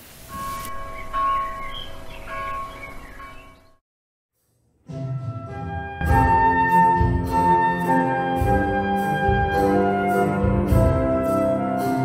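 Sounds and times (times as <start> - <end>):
bells ringing: 0.3 - 3.8.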